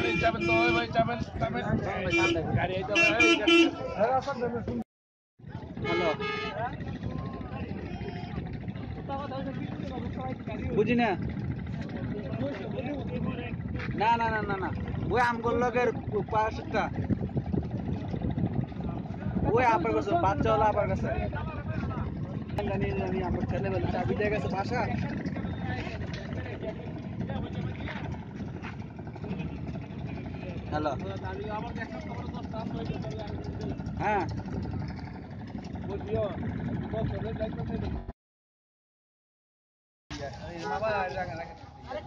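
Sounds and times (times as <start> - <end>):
boat engine rumbling: 0.0 - 4.8, 5.4 - 38.1, 40.1 - 42.0
people talking: 0.0 - 4.8, 5.5 - 38.0, 40.1 - 42.0.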